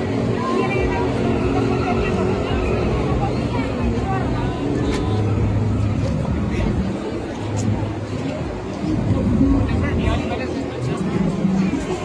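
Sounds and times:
people chattering: 0:00.0 - 0:12.0
steady traffic noise: 0:00.0 - 0:12.0.

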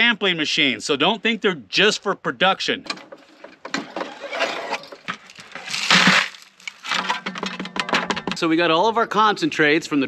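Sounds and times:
sand and gravel rattling into bucket: 0:04.1 - 0:07.6.

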